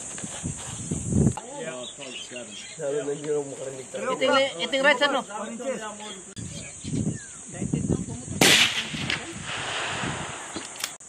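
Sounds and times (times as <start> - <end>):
insects buzzing: 0.0 - 11.0
suppressed rifle shot: 8.4 - 11.0.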